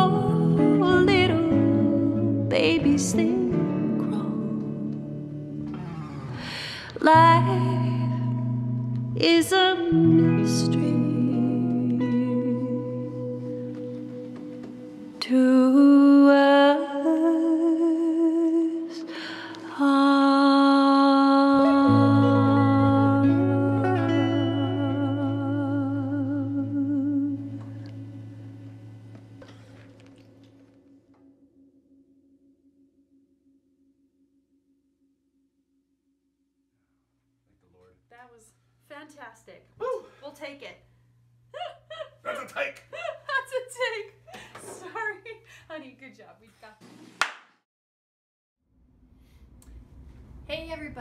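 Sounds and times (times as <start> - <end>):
woman singing with vibrato: 0.0 - 5.2, 6.5 - 8.6, 9.2 - 14.4, 15.0 - 27.6
guitars playing held chords: 0.0 - 15.6, 20.6 - 31.3.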